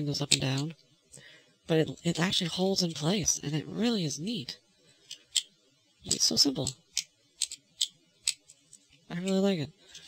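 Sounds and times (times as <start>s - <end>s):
plastic parts clicking together: 6.6s - 10.0s.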